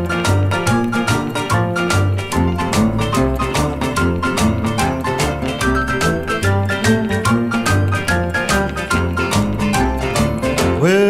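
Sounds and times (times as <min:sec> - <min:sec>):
country guitar music: 0:00.0 - 0:11.0.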